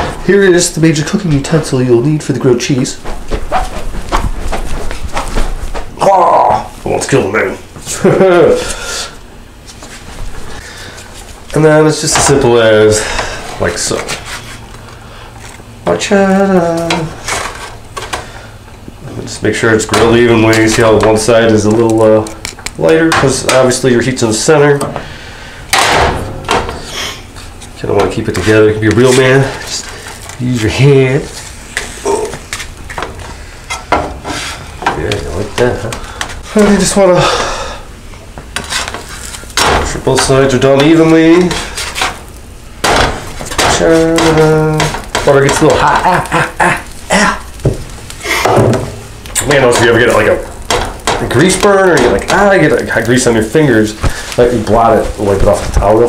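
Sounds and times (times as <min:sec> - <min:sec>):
man saying ah: 0:32.0 - 0:32.4, 0:43.8 - 0:46.0, 0:46.6 - 0:47.5
spatula scraping grill pan: 0:38.5 - 0:42.4.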